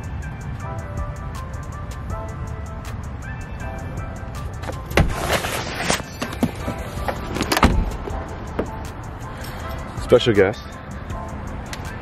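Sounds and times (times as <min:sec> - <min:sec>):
car door thump: 0:04.6 - 0:05.4, 0:06.2 - 0:08.8
car door clicks: 0:04.6 - 0:08.8.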